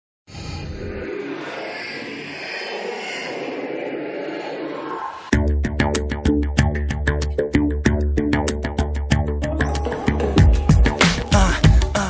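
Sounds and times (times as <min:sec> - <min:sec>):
steady rushing noise: 0:00.3 - 0:05.3.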